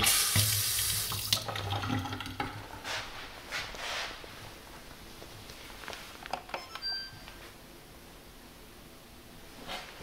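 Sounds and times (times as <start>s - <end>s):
faucet water splashing into sink: 0.0s - 2.6s.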